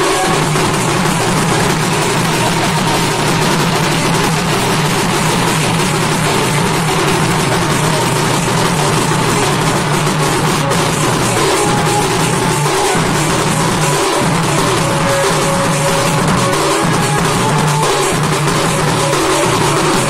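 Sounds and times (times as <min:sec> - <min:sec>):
barrel drums beaten: 0:00.0 - 0:20.0
folk band playing: 0:00.0 - 0:20.0.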